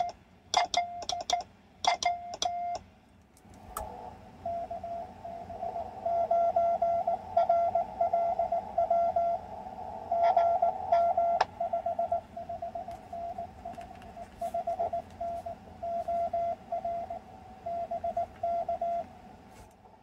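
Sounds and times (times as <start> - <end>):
morse beeps from radio speaker: 0.0 - 2.8, 4.5 - 9.4, 10.1 - 13.6
morse key tones with clicks: 0.0 - 2.9
faint radio hiss: 2.9 - 20.0.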